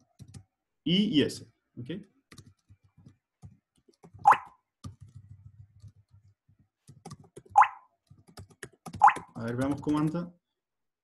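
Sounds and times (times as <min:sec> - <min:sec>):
keyboard typing: 0:00.0 - 0:00.5, 0:02.0 - 0:10.3.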